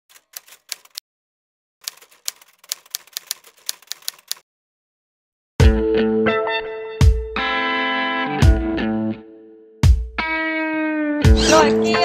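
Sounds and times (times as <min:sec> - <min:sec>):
typewriter keystrokes: 0:00.1 - 0:01.0, 0:01.8 - 0:04.4.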